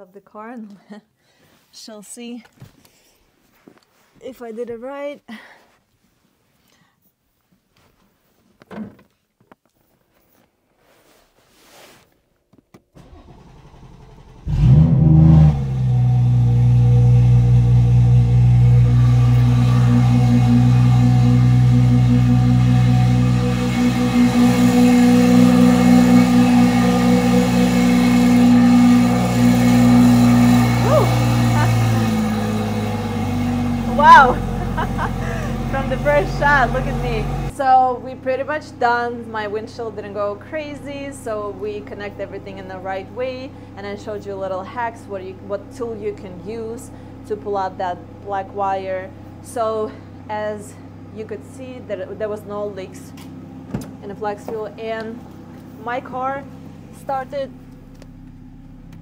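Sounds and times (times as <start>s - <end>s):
car engine starting and idling: 13.0s - 59.0s.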